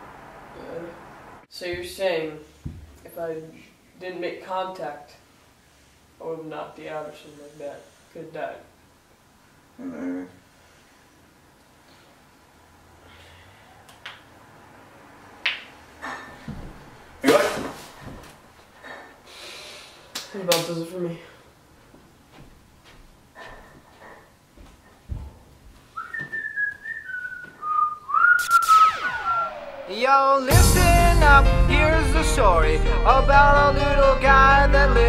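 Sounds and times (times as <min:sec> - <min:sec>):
sharp snaps: 0:15.4 - 0:15.7, 0:20.1 - 0:20.8, 0:28.3 - 0:29.2
person whistling a tune: 0:26.0 - 0:29.5
tones sweeping down in pitch: 0:28.2 - 0:30.0.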